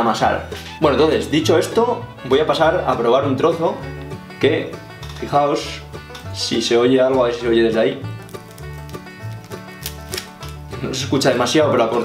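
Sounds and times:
background music with bass line: 0.0s - 12.0s
bread crust crackling: 8.1s - 10.8s.

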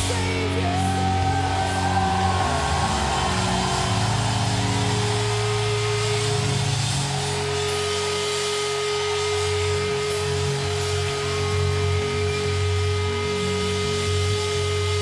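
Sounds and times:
deep bass note: 0.0s - 15.0s
distorted guitar and bass drone: 0.0s - 15.0s
steady held tone: 0.0s - 15.0s.

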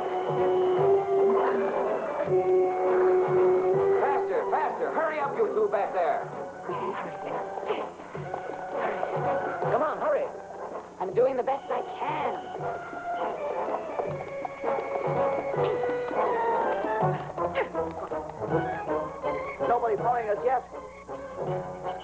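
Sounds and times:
film soundtrack music: 0.0s - 22.0s.

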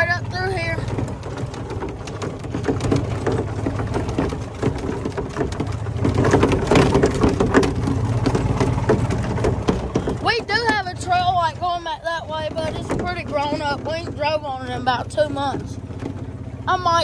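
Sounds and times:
cart rattling over bumps: 0.0s - 17.0s
golf cart motor hum: 0.0s - 17.0s.

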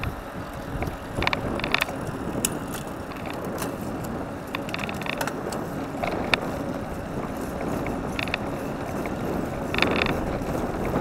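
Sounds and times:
bicycle drivetrain clicking: 0.0s - 11.0s
wind and road noise: 0.0s - 11.0s.

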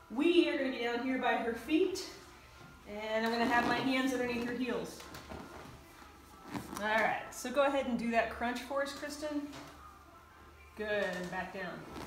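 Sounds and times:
woman speaking: 10.8s - 11.8s.

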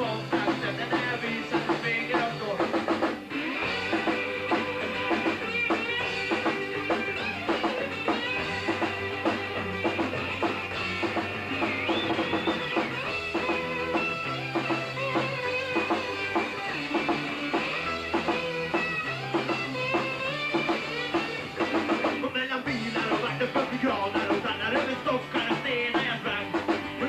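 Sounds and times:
drum kit steady beat: 0.0s - 27.0s
electric guitars: 0.0s - 27.0s
low bass notes: 3.6s - 27.0s.

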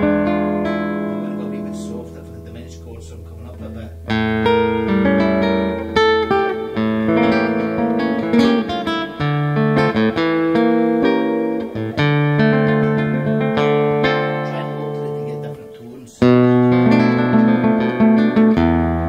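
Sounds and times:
nylon-string guitar fingerstyle: 0.0s - 19.0s.

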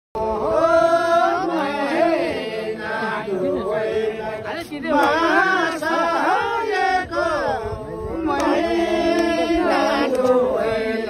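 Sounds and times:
men singing folk song: 0.2s - 11.0s.

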